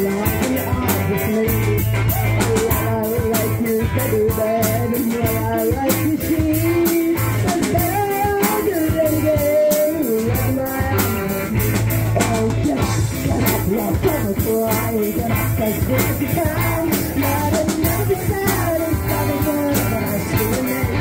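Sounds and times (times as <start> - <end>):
bass guitar: 0.0 - 21.0
bending melody line: 0.0 - 21.0
drum kit beat: 0.0 - 21.0
electric guitars: 0.0 - 21.0.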